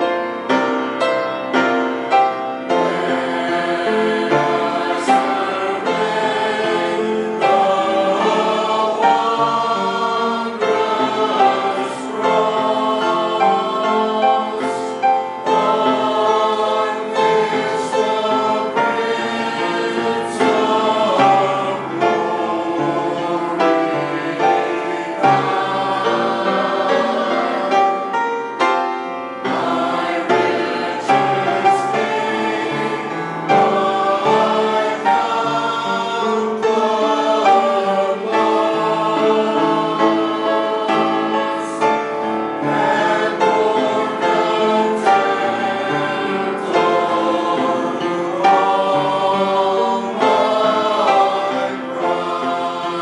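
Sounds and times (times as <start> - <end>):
choir singing a hymn: 0.0 - 53.0.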